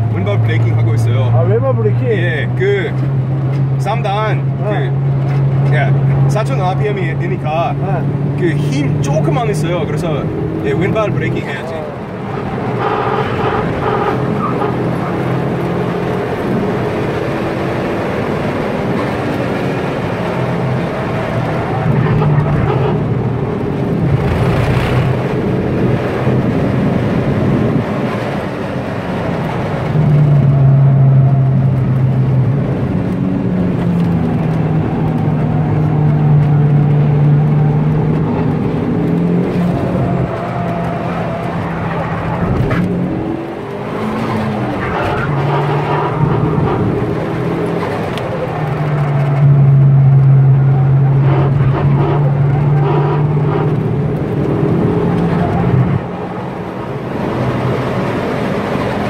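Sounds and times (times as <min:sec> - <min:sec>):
car engine running hard: 0:00.0 - 0:59.0
road and wind noise: 0:00.0 - 0:59.0.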